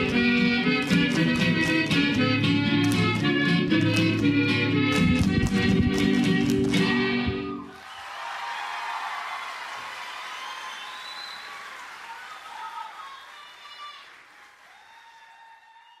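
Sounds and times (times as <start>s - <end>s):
audience applauding and cheering: 7.6s - 16.0s.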